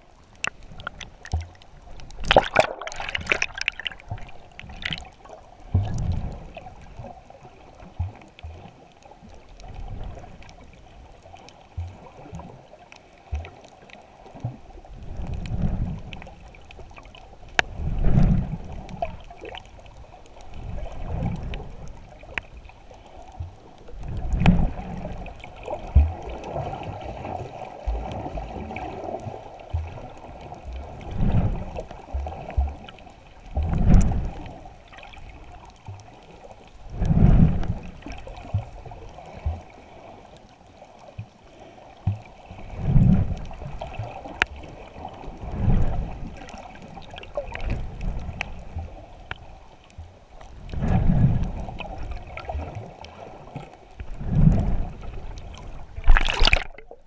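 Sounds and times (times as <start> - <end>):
steady underwater hum: 0.0 - 57.0
water surging underwater: 0.0 - 57.0.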